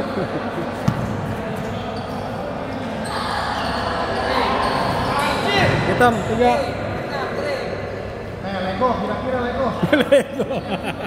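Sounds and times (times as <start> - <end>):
basketball bouncing on court: 0.8 - 1.4.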